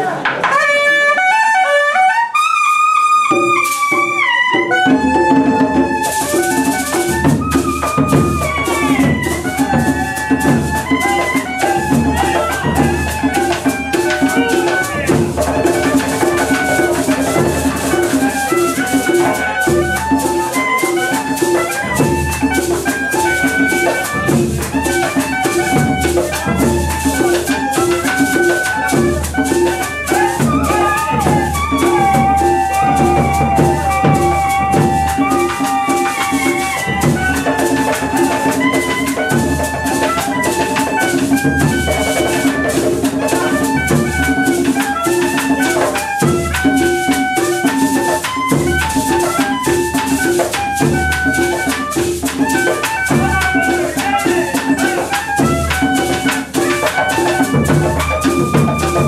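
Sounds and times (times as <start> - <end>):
cane flute melody: 0.0 - 59.0
shaker rhythm: 0.0 - 59.0
hand drum beats: 3.2 - 59.0.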